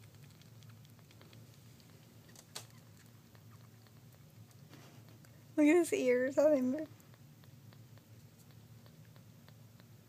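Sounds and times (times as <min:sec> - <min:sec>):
kitten suckling wet clicks: 0:00.0 - 0:10.0
low steady hum: 0:00.0 - 0:10.0.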